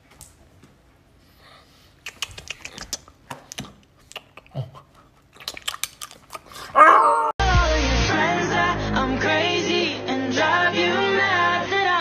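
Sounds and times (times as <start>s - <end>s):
sharp clicks and smacks: 2.0s - 4.5s, 5.4s - 6.5s.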